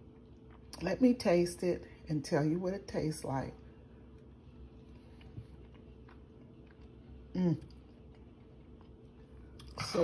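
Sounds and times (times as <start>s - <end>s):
person chewing food: 0.0s - 0.8s, 4.0s - 9.9s.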